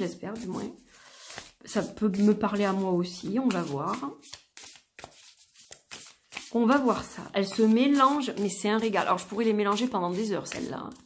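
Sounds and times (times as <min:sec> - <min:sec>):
cards being shuffled: 0:00.4 - 0:11.0.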